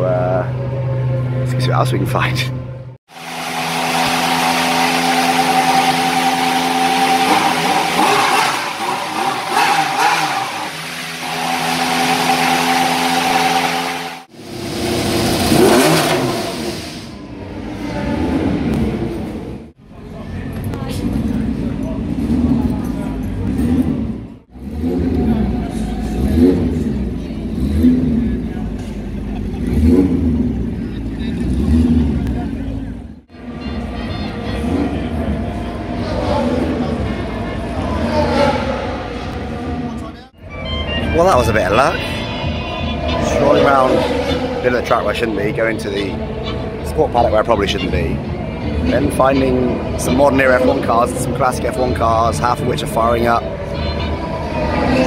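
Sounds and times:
racing car engine droning: 0.0 - 55.0
racing car engine revving: 3.1 - 40.3, 41.0 - 55.0.

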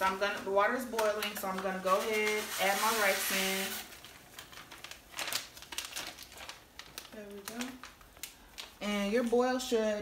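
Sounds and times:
plastic packet crinkling: 0.0 - 9.3.

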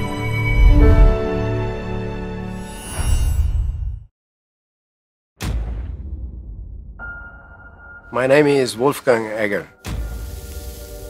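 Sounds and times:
deep low boom: 5.4 - 8.1.

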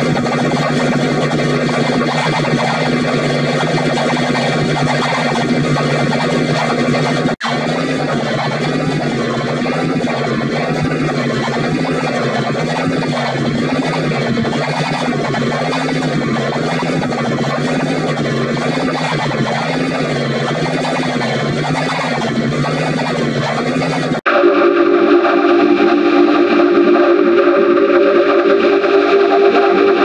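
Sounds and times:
wobbling vibrato musical drone: 0.0 - 30.0.

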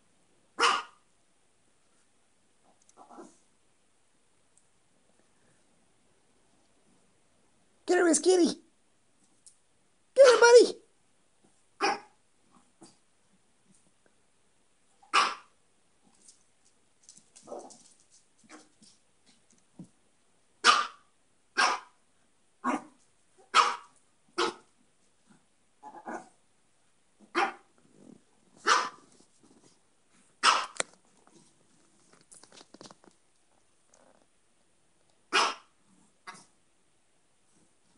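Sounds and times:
small dogs barking: 0.6 - 1.0, 11.8 - 12.2, 15.1 - 15.5, 20.6 - 21.0, 21.6 - 22.0, 22.6 - 24.7, 27.3 - 27.7, 28.6 - 29.0, 30.4 - 30.8, 35.3 - 35.7.

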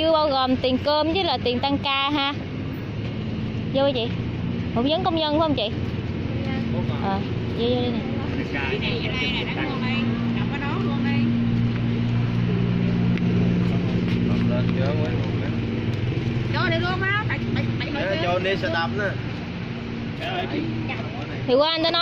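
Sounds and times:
vehicle engine humming: 0.0 - 22.0
people talking: 6.4 - 11.3, 20.2 - 22.0.

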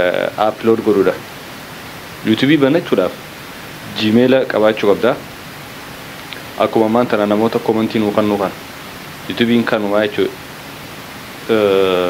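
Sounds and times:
man speaking into a microphone: 0.0 - 1.2, 2.2 - 3.2, 3.8 - 5.2, 6.5 - 8.6, 9.3 - 10.4, 11.5 - 12.0
steady background hiss: 0.0 - 12.0.

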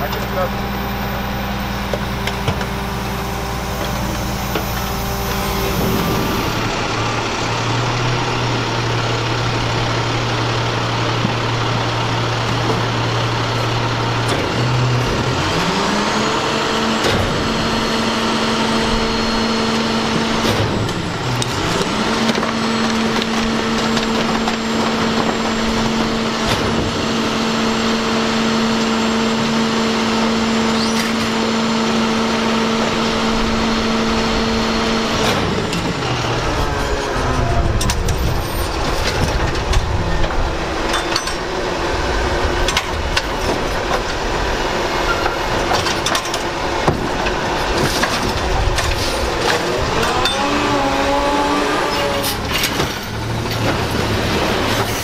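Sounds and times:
diesel truck engine revving: 0.0 - 55.0.

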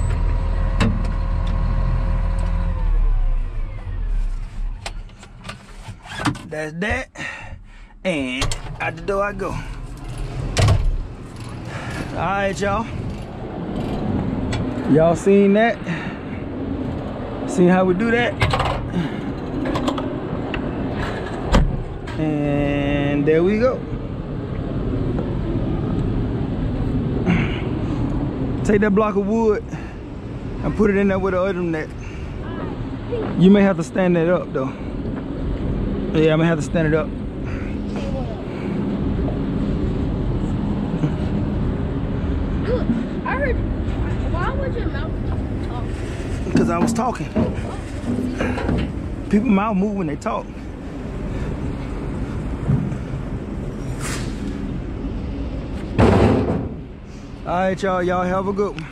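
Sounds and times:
diesel engine running: 0.0 - 5.4.

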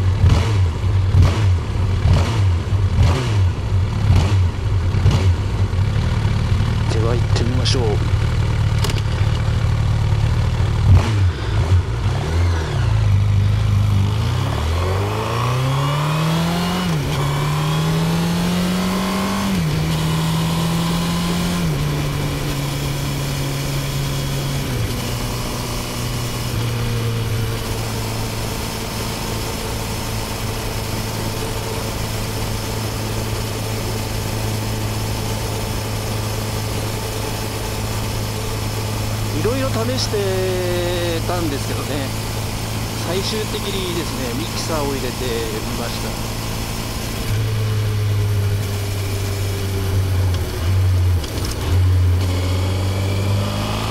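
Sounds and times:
motorcycle engine revving: 0.0 - 53.9.

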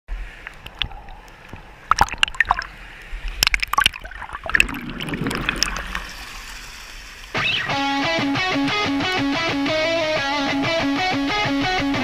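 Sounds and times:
stream water sloshing and gurgling: 0.1 - 7.4.

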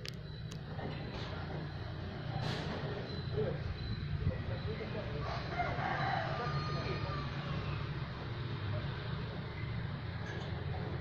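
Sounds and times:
distant rooster crowing: 5.0 - 8.3.

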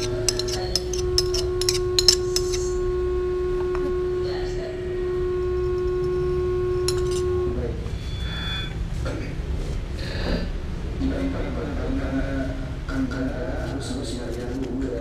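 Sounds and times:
low background rumble: 0.0 - 15.0
steady hum-like tone: 0.0 - 15.0.

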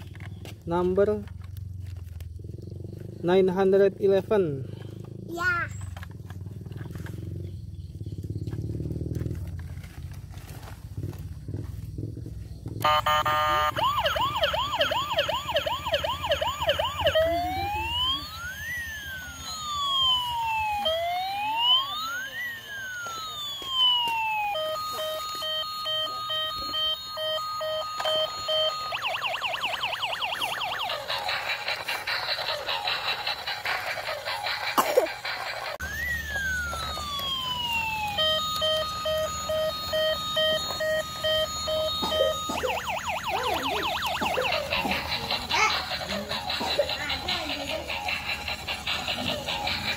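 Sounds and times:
toy electronic siren: 12.8 - 49.9.

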